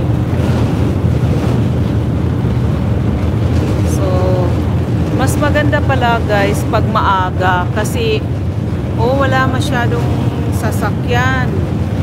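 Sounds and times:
ship engines droning: 0:00.0 - 0:12.0
wind buffeting microphone: 0:00.0 - 0:12.0.

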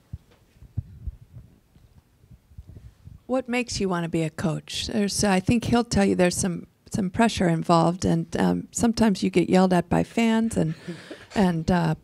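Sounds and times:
dull low thuds: 0:00.1 - 0:01.6.

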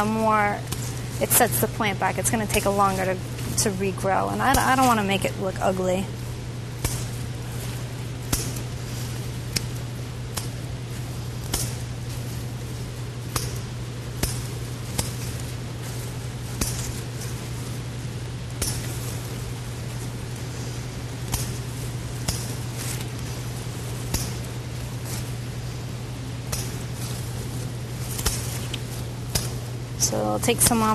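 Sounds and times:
scissors snipping stems: 0:00.0 - 0:12.3, 0:28.1 - 0:30.9
steady low hum: 0:00.0 - 0:30.9.

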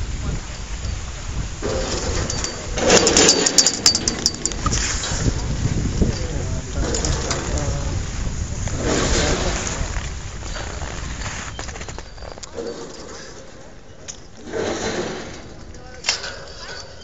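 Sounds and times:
wind rumble on microphone: 0:00.0 - 0:17.0.

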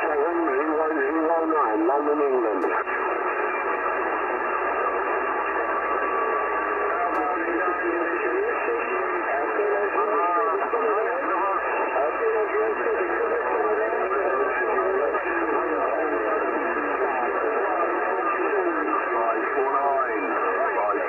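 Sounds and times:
garbled radio voices: 0:00.0 - 0:21.0
radio static: 0:00.0 - 0:21.0.

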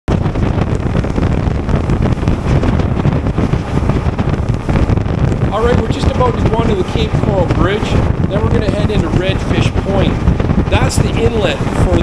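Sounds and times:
motorboat engine: 0:00.1 - 0:12.0
water noise: 0:00.1 - 0:12.0
wind rushing over microphone: 0:00.1 - 0:12.0
man's voice: 0:05.5 - 0:12.0.

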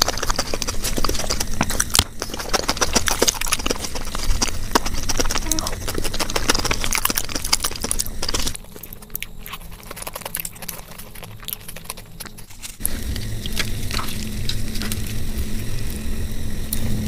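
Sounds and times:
sped-up chewing and mouth smacks: 0:00.0 - 0:16.0.

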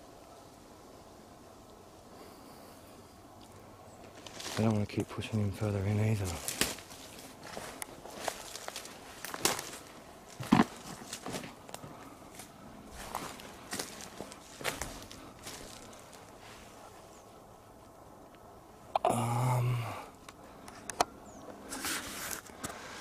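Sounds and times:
footsteps on forest floor: 0:04.0 - 0:16.8.

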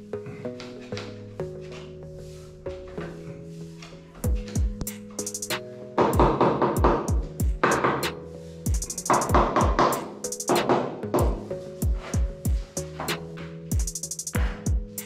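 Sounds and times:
kick drums: 0:04.2 - 0:04.9, 0:06.0 - 0:08.0, 0:08.7 - 0:10.0, 0:11.2 - 0:12.8, 0:13.7 - 0:15.0
sharp hi-hat hits: 0:04.8 - 0:05.6, 0:08.7 - 0:09.4, 0:13.7 - 0:15.0.

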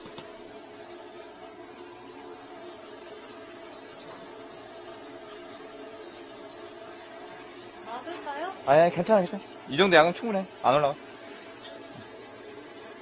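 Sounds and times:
water running into a drain: 0:00.0 - 0:13.0.

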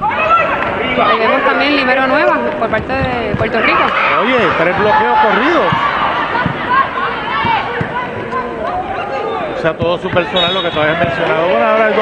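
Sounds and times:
arena background noise: 0:00.0 - 0:12.0.

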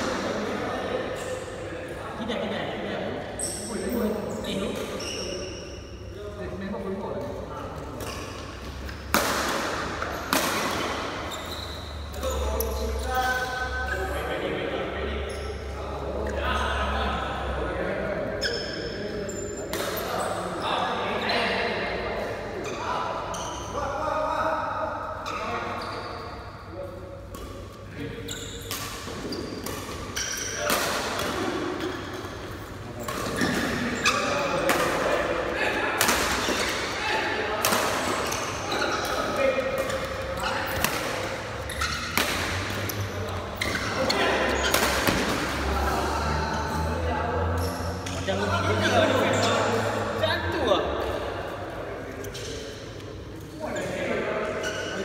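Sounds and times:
men talking: 0:00.0 - 0:08.2, 0:12.1 - 0:28.4, 0:32.5 - 0:41.7, 0:42.3 - 0:55.0
rackets hitting shuttlecock: 0:08.9 - 0:11.1, 0:28.6 - 0:32.4, 0:35.9 - 0:37.0, 0:37.6 - 0:43.0, 0:43.6 - 0:45.6.

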